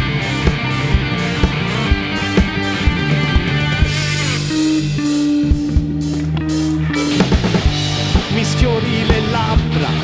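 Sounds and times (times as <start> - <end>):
bass guitar: 0.0 - 10.0
drum and cymbal hits: 0.0 - 10.0
electric guitar: 0.0 - 10.0.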